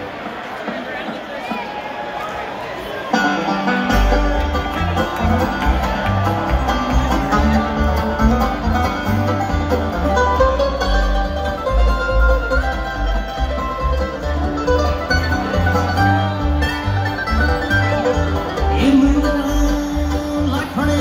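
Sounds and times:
live bluegrass band: 0:00.0 - 0:21.0
banjo: 0:03.0 - 0:21.0
upright bass line: 0:03.9 - 0:21.0.

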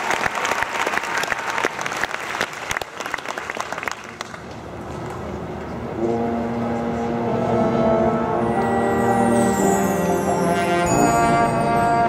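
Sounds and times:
marching band brass chord: 0:06.0 - 0:12.0.

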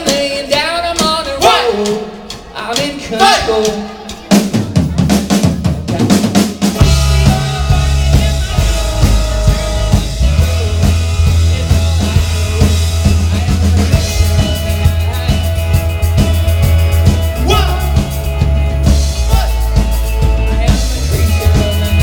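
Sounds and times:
drum kit beat: 0:00.0 - 0:22.0
rock band with fiddle: 0:00.0 - 0:22.0.

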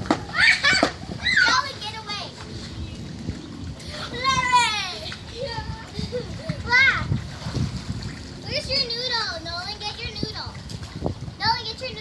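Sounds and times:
children calling and shouting: 0:00.1 - 0:02.8, 0:03.8 - 0:07.3, 0:08.4 - 0:10.7, 0:11.4 - 0:12.0
high-pitched shout: 0:00.3 - 0:01.8, 0:04.2 - 0:05.0.

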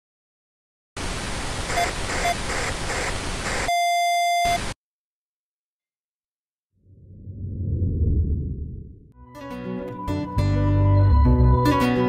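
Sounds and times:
static hiss: 0:01.0 - 0:03.7.

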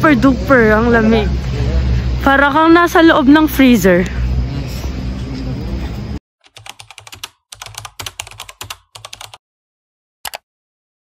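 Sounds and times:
outdoor street background: 0:00.0 - 0:06.2
keyboard typing clicks: 0:06.4 - 0:09.4.

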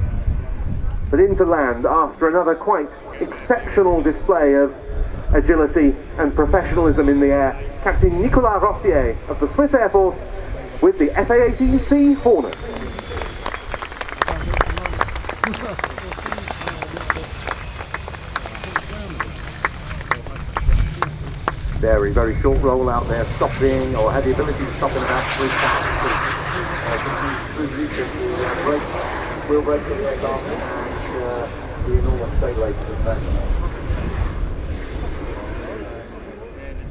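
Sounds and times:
jet engines low rumble: 0:00.0 - 0:36.9
spectators clapping: 0:12.7 - 0:21.7
people talking in crowd: 0:14.2 - 0:22.4, 0:25.0 - 0:36.9.

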